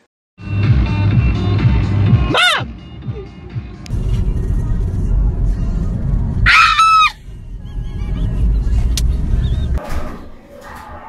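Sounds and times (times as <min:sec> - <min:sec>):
car cabin rumble: 0:03.9 - 0:09.8
person screaming: 0:06.5 - 0:07.2.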